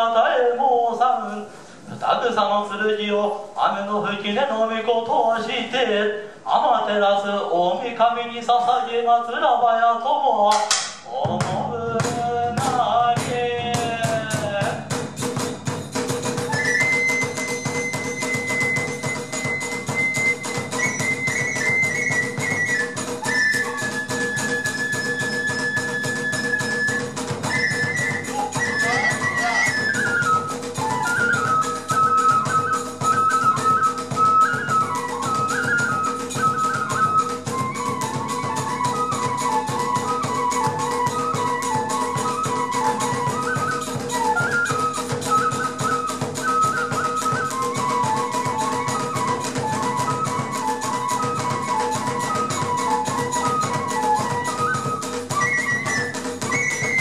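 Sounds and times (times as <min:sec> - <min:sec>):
fast drum beating: 0:10.5 - 0:57.0
bamboo flute melody: 0:11.2 - 0:57.0
hand cymbals beating: 0:11.3 - 0:33.0.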